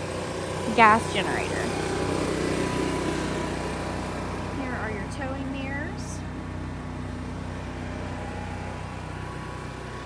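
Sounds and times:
small engine idling: 0.0s - 10.0s.

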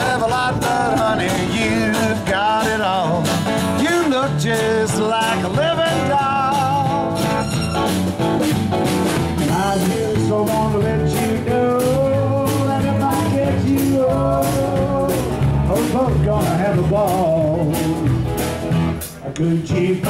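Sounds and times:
sliding lead melody: 0.0s - 19.2s
drum kit beat: 0.0s - 19.4s
acoustic guitars: 0.0s - 20.0s.

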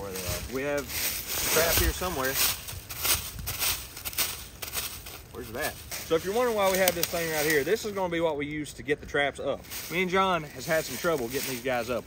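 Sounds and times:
dry leaves crackling and rustling: 0.0s - 8.7s, 9.4s - 12.0s.

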